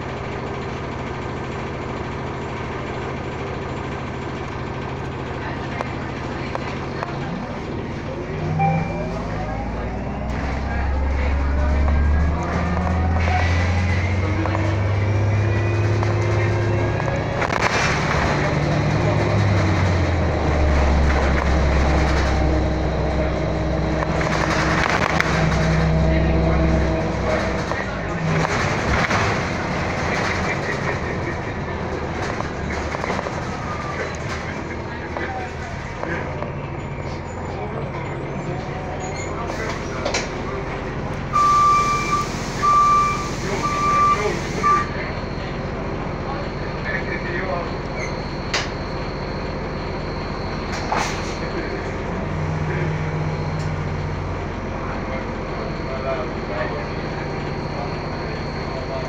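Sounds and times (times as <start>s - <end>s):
bus drivetrain hum: 0.0s - 59.0s
road noise rumble: 0.0s - 59.0s
short high beeps: 8.4s - 10.3s.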